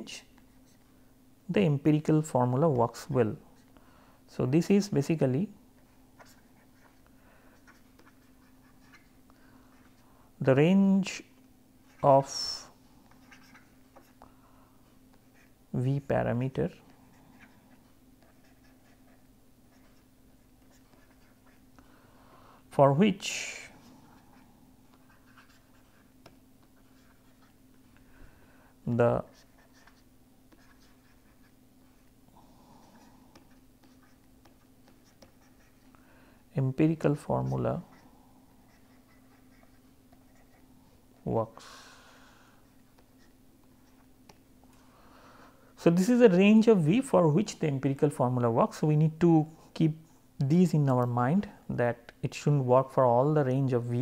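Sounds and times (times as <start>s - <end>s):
faint room hum: 0.0s - 54.0s
stylus ticking and scratching: 32.8s - 36.0s.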